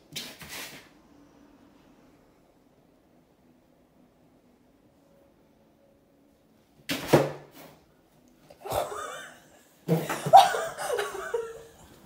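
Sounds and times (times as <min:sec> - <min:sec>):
person laughing: 0:08.6 - 0:11.9.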